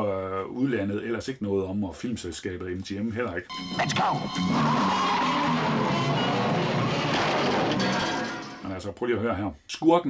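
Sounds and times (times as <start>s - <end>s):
tyres squealing: 3.5s - 8.6s
film score music: 3.5s - 8.7s
cars driving hard: 4.5s - 8.6s.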